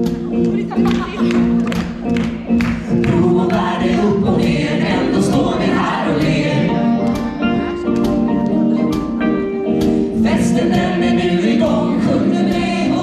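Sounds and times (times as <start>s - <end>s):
group singing in unison: 2.8s - 13.0s.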